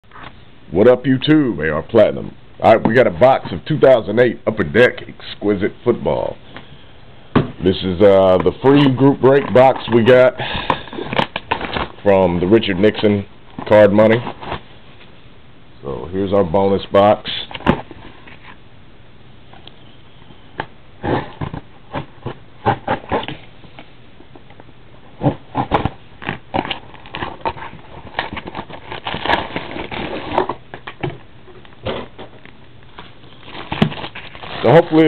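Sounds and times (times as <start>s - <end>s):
plastic shrink wrap crinkling: 8.4s - 13.0s, 25.5s - 35.0s.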